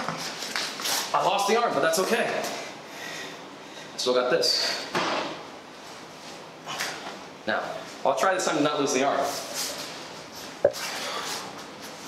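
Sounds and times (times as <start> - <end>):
people scuffling on floor mat: 0.0 - 1.2, 9.2 - 12.0.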